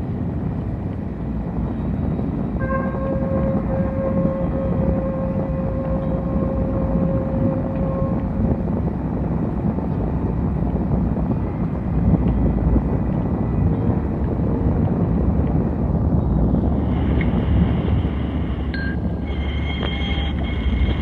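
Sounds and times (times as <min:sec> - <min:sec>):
low noisy electronic drone: 0:00.0 - 0:21.0
clear held tone: 0:02.6 - 0:08.4, 0:18.6 - 0:21.0.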